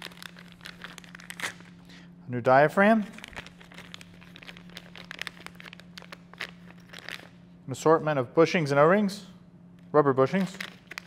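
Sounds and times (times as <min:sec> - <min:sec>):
plastic bag crinkling: 0:00.0 - 0:01.8, 0:03.0 - 0:07.4, 0:10.4 - 0:11.0.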